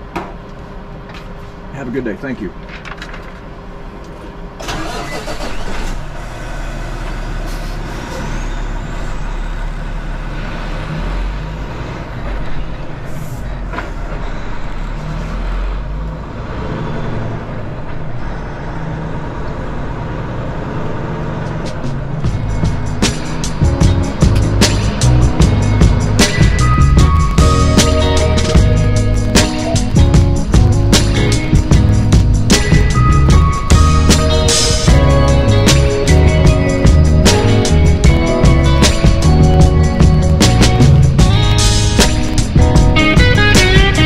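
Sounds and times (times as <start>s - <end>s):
truck diesel engine rumbling: 0.0s - 44.0s
music with strong beat: 21.7s - 44.0s.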